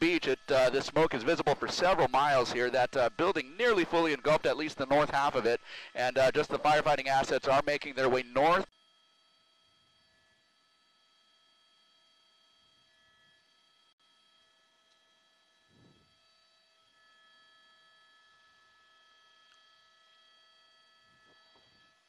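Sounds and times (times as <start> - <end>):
faint high-pitched hum: 0.0 - 8.7.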